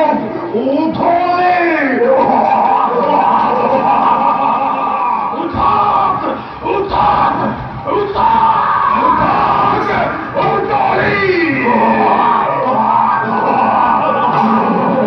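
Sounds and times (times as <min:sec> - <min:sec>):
loud drawn-out voices: 0:00.0 - 0:15.0.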